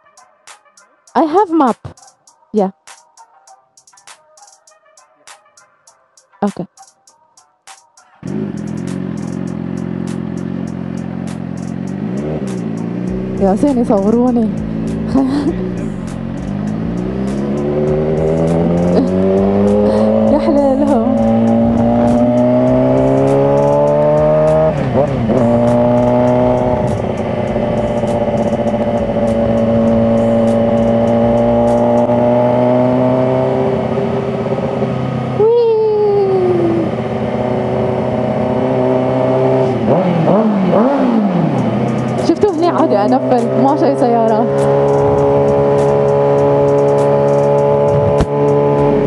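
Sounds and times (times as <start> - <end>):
motorcycle engine accelerating: 8.2 - 49.0.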